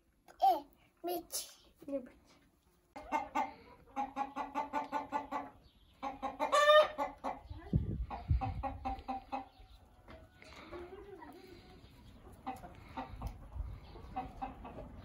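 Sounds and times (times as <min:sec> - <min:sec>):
chickens clucking: 0:02.4 - 0:15.0
chicken cackling call: 0:03.0 - 0:07.4.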